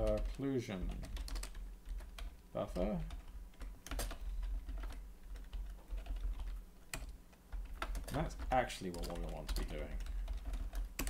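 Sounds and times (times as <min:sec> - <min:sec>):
steady low hum: 0:00.0 - 0:11.0
typing on computer keyboard: 0:00.0 - 0:11.0.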